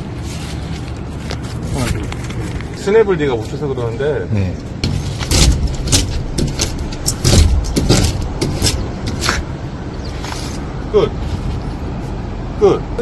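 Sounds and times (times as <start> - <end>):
scraper blade scraping glass: 4.9 - 9.5.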